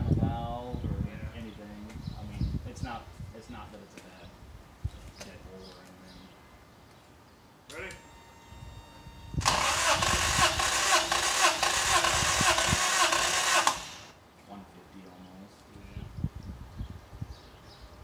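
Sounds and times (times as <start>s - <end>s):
starter motor cranking engine: 8.0s - 14.2s.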